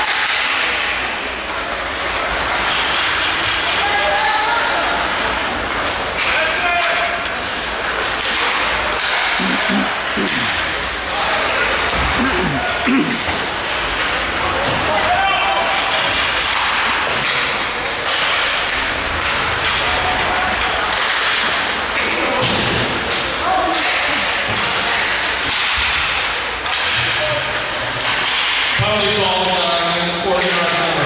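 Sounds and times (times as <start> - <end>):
spectators' voices: 0.0 - 31.0
sticks and puck cracking on boards: 0.0 - 31.0
person calling out: 9.4 - 10.6.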